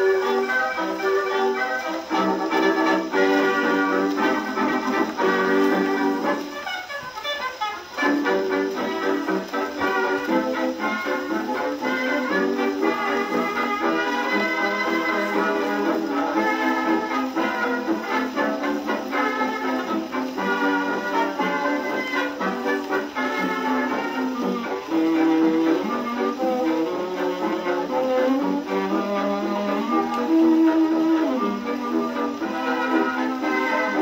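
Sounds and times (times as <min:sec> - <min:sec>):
old jazz dance band record: 0:00.0 - 0:34.0.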